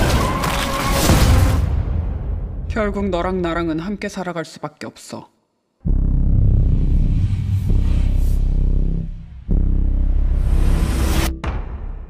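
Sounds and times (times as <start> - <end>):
sustained low drone: 5.9 - 11.3.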